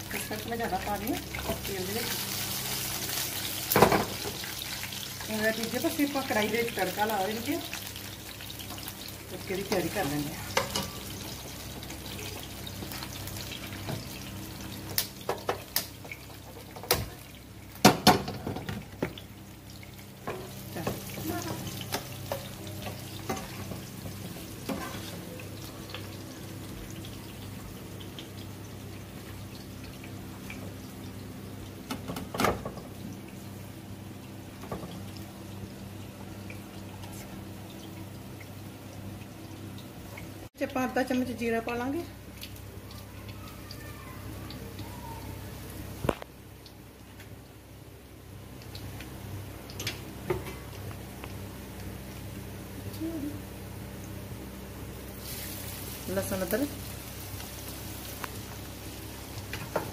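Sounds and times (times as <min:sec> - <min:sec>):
oil frying in a pan: 0:00.0 - 0:59.9
steady stove hum: 0:00.0 - 0:59.9.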